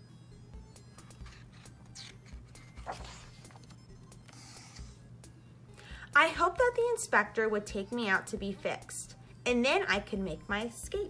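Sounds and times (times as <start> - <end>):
faint background music: 0.0 - 11.0
book page turning: 1.1 - 5.0.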